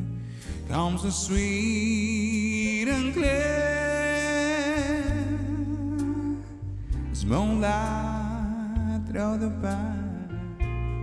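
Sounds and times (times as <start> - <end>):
electric guitar chords: 0.0 - 11.0.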